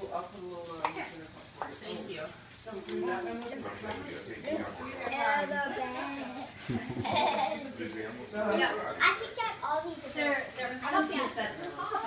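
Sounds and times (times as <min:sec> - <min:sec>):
young children chattering: 0:02.9 - 0:07.8, 0:08.4 - 0:12.0.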